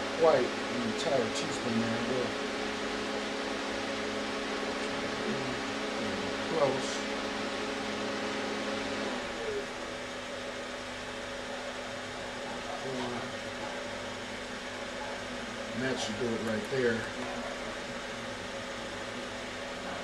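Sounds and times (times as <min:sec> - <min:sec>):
cooling fans humming: 0:00.0 - 0:20.0.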